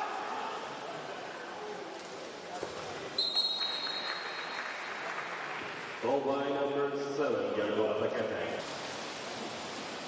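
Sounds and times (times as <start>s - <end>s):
crowd noise: 0.0s - 8.6s
referee's whistle blast: 3.2s - 4.2s.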